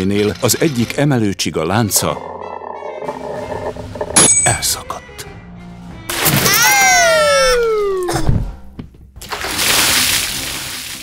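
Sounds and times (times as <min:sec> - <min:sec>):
big water splash: 0:09.2 - 0:11.0.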